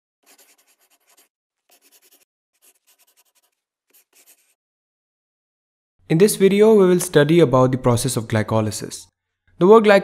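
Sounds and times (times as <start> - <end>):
marker pen scratching: 0.2 - 4.6.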